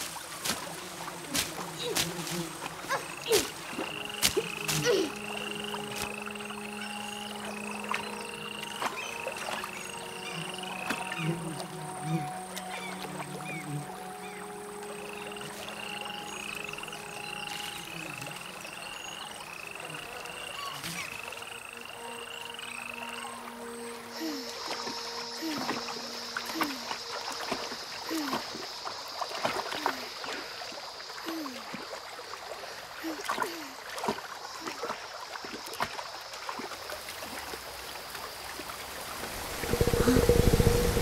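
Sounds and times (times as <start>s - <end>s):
soft sustained music tones: 0.0s - 29.6s, 36.5s - 41.0s
frogs chirping: 0.8s - 41.0s.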